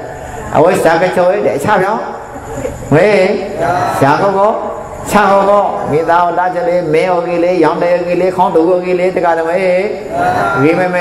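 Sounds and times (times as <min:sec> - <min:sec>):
man chanting: 0:02.9 - 0:11.0.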